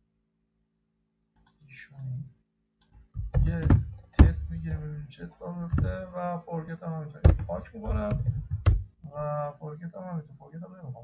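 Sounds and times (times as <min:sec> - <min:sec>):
faint clicks: 0:01.4 - 0:02.2
man speaking: 0:01.6 - 0:02.3, 0:03.4 - 0:11.0.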